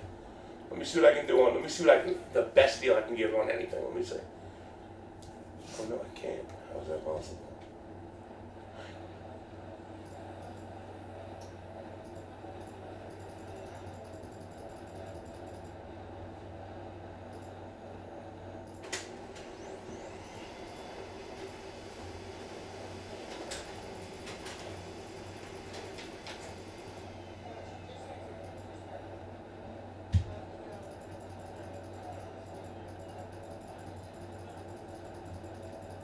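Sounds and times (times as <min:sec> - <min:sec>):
low room hum: 0:00.0 - 0:36.0.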